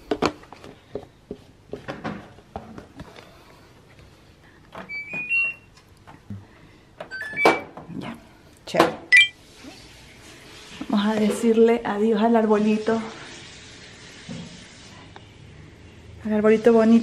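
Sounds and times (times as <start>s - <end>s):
washing machine rising chimes: 4.9s - 5.7s, 7.1s - 7.7s, 9.1s - 9.4s.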